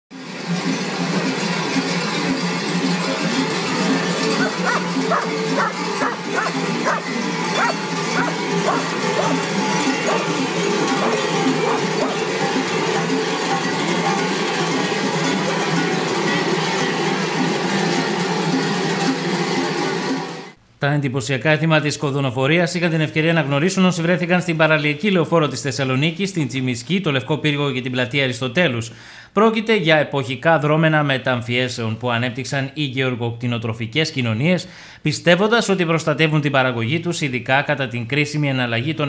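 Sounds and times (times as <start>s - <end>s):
large metal bells clanging: 0.2s - 20.4s.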